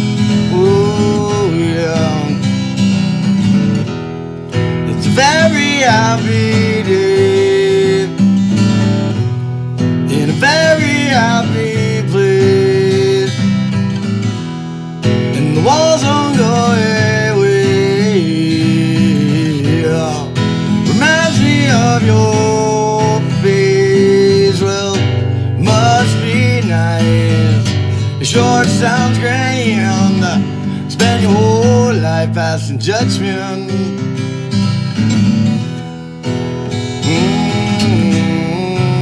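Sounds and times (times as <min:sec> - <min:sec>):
man singing: 0:00.0 - 0:03.0, 0:04.5 - 0:09.2, 0:10.0 - 0:14.0, 0:15.0 - 0:35.1, 0:36.7 - 0:39.0
acoustic guitar strummed: 0:00.0 - 0:39.0.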